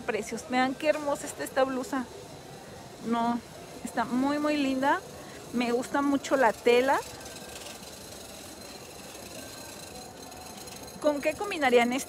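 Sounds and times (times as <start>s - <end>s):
indoor market background hum: 0.0s - 12.0s.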